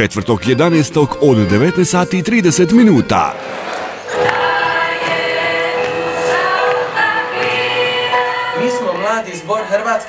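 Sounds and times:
choir singing: 3.3s - 10.0s.

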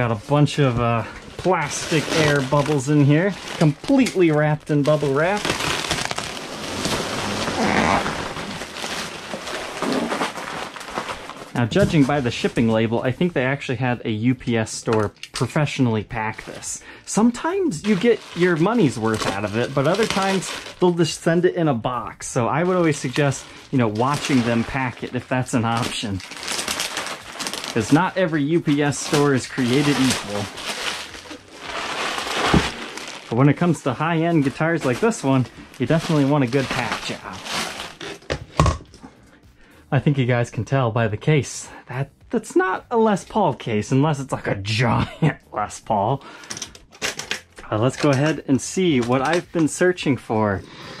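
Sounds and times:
plastic packing rustling and crinkling: 0.0s - 13.6s, 14.4s - 39.1s, 46.2s - 50.2s.

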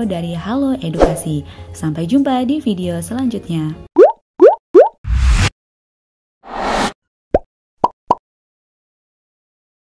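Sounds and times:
plopping pop sound effects: 4.0s - 5.0s, 7.3s - 8.2s.

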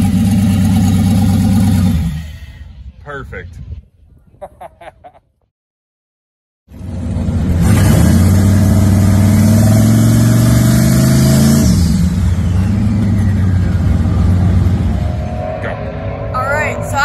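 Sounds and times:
pickup truck engine revving: 6.7s - 17.0s.

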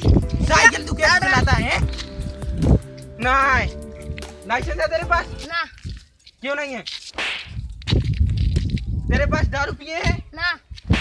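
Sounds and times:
wind buffeting microphone: 0.0s - 6.1s, 7.5s - 11.0s.

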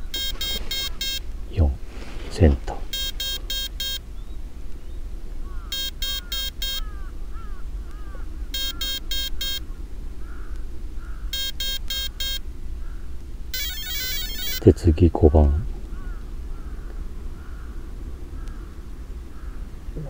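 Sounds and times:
short electronic beeps: 0.0s - 1.2s, 2.9s - 4.0s, 5.7s - 6.8s, 8.6s - 9.6s, 11.3s - 12.4s, 13.6s - 14.7s.

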